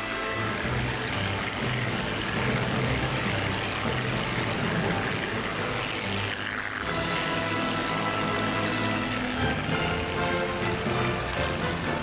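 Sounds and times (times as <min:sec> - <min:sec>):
background music: 0:00.0 - 0:12.0
turboprop aircraft droning: 0:00.0 - 0:12.0.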